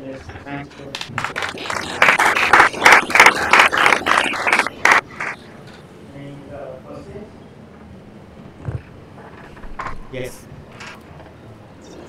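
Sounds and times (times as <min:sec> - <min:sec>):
audience applauding: 0:01.1 - 0:05.4.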